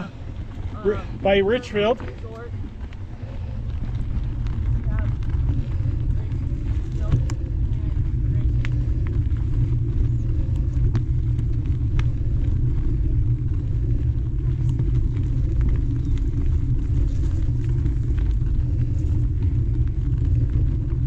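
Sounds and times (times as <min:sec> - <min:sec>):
bike clicks and rattles: 0:00.0 - 0:21.0
knobby tyres rolling on dirt: 0:00.0 - 0:21.0
wind rumble on microphone: 0:00.0 - 0:21.0.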